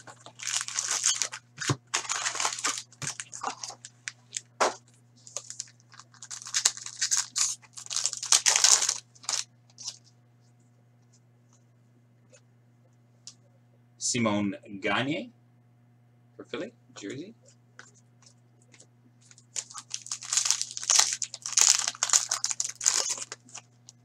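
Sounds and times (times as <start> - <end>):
foil wrapper tearing and crinkling: 0.0 - 4.5, 5.2 - 10.0, 19.2 - 24.0.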